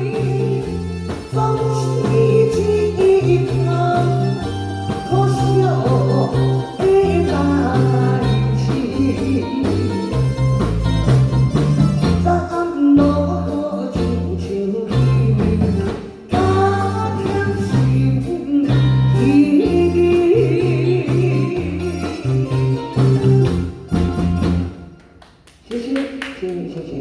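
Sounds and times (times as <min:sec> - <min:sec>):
woman singing into microphone: 0:00.0 - 0:10.2, 0:12.2 - 0:22.7
live band playing: 0:00.0 - 0:25.4.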